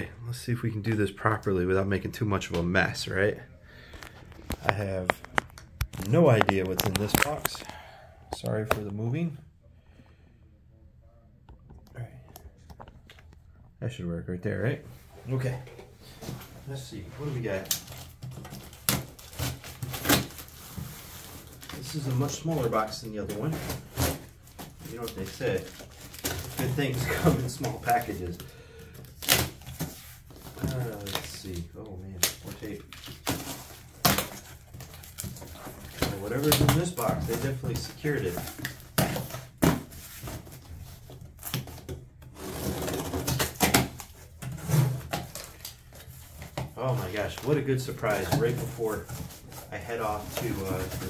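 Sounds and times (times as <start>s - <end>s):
cardboard flaps scraping and rustling: 17.2s - 28.4s, 32.4s - 51.0s
tape and cardboard tearing: 17.6s - 20.8s, 29.1s - 40.7s, 41.4s - 45.7s.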